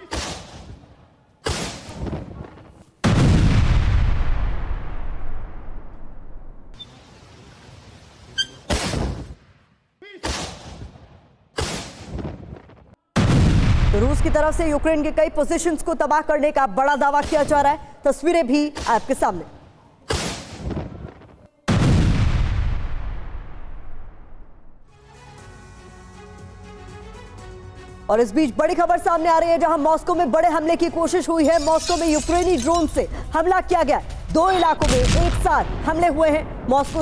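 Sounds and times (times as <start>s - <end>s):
artillery explosion booming: 3.0s - 6.4s, 13.2s - 14.4s, 21.7s - 24.6s.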